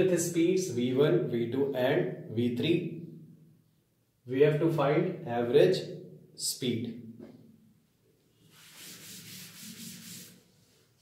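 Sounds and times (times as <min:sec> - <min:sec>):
duster rubbing chalkboard: 0:08.4 - 0:10.8.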